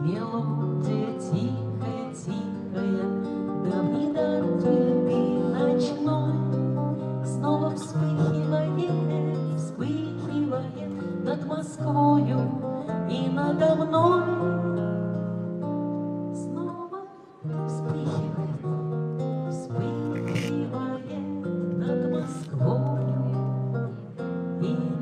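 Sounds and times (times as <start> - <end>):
acoustic guitar playing: 18.6 - 24.6.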